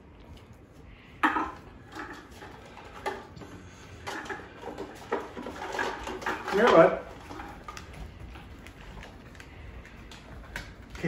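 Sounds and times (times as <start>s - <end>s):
plastic cups knocking and rattling: 1.2s - 11.0s.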